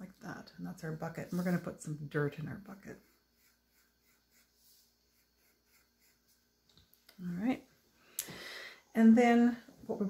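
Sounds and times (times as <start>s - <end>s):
pencil scratching on paper: 1.2s - 1.8s, 2.7s - 6.6s.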